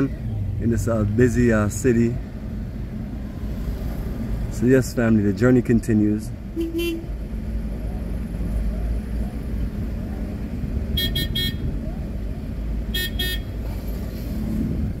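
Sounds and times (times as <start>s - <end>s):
car and traffic rumble: 0.0s - 15.0s
vehicle horn beeps: 6.6s - 7.1s, 10.9s - 11.7s, 12.9s - 13.5s.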